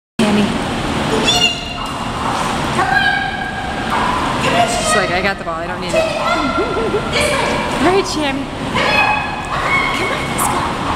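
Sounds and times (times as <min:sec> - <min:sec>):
pool water rushing: 0:00.2 - 0:10.9.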